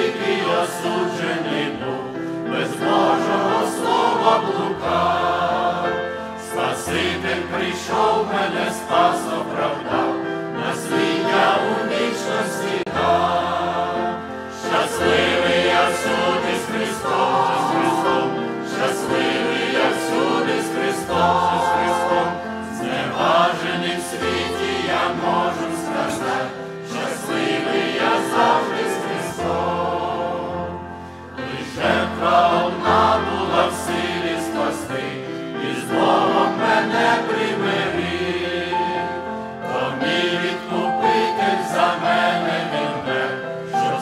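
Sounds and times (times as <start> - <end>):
grand piano: 0.0 - 44.0
mixed choir singing a hymn: 0.0 - 44.0.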